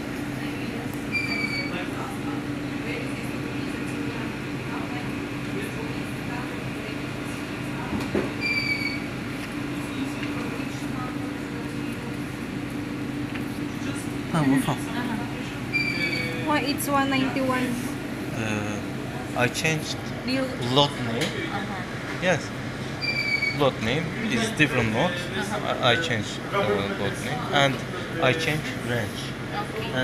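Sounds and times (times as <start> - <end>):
machine hum: 0.0 - 30.0
murmur of a voice: 0.0 - 30.0.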